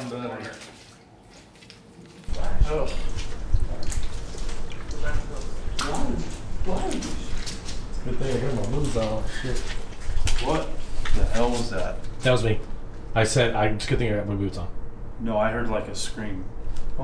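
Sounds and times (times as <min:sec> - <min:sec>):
footsteps in a hallway: 0:00.0 - 0:12.3
indistinct voices: 0:02.3 - 0:17.0.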